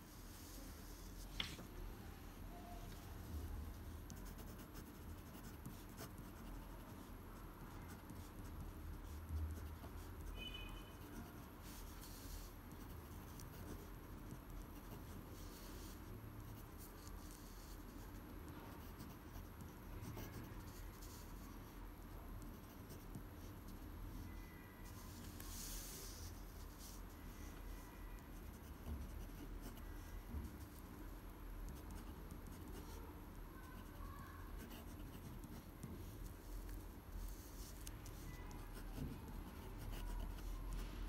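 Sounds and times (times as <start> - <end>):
pen scratching on paper: 4.1 - 7.1, 7.7 - 18.2, 18.8 - 21.5, 22.4 - 27.1, 28.2 - 30.8, 33.6 - 40.8.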